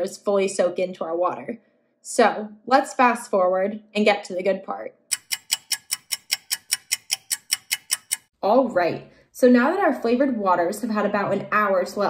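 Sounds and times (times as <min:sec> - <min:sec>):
clock ticking fast: 0:05.1 - 0:08.3.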